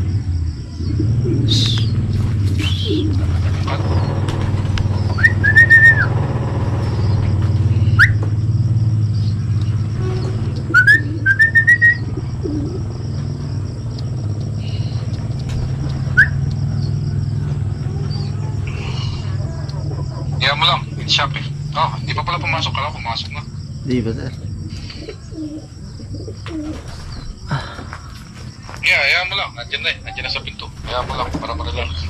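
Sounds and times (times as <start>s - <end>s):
low rumble: 0.0s - 26.1s
high whistled calls: 0.8s - 4.2s, 4.9s - 8.4s, 9.1s - 13.0s, 13.8s - 23.7s.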